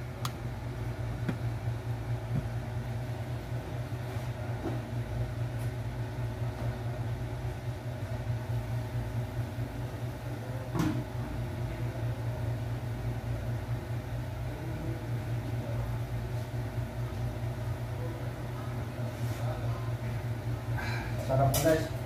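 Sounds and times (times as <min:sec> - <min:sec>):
low machine hum: 0:00.0 - 0:22.0.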